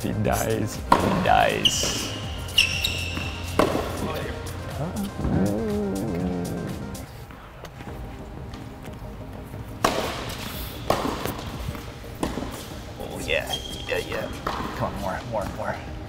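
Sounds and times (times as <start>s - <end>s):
tennis ball bounces: 0.8s - 4.3s, 9.8s - 12.8s, 14.4s - 15.6s
tennis racket hits: 0.9s - 4.4s, 9.8s - 12.8s, 14.3s - 15.6s
shoe squeaks on court: 1.4s - 4.2s, 13.4s - 14.8s.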